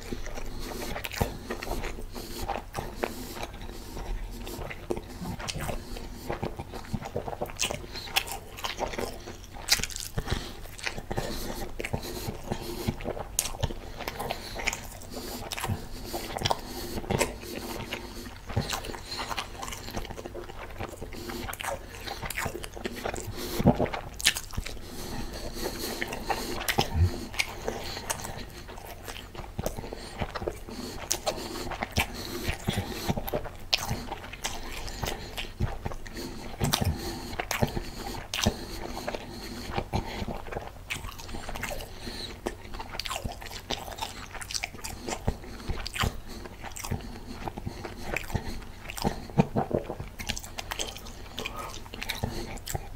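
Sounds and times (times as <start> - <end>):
man chewing food: 0.0 - 52.9
mouth clicks and smacks: 0.0 - 52.9.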